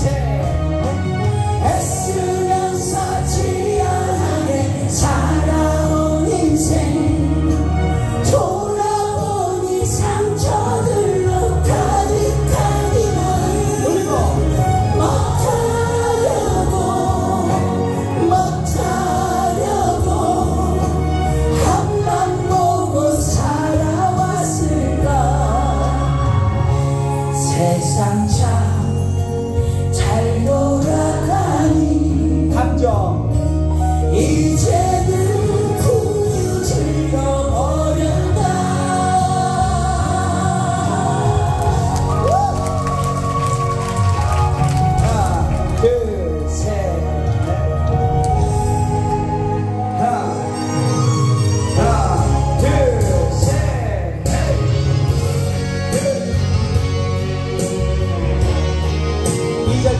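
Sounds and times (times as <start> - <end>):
man singing into a microphone: 0.0 - 42.6, 44.8 - 56.8, 59.5 - 59.9
karaoke backing track: 0.0 - 59.9.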